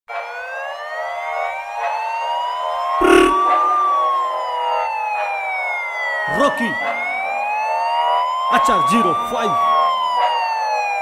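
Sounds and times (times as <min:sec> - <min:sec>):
siren wail: 0:00.8 - 0:11.0.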